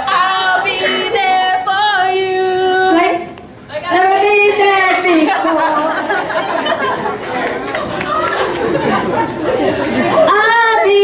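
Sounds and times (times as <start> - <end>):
woman singing into microphone: 0.0 - 5.3, 10.3 - 11.0
crowd chatter: 0.0 - 11.0.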